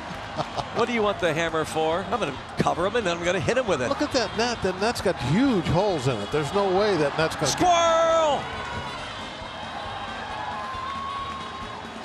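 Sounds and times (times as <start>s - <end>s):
crowd voices in stands: 0.0s - 12.0s.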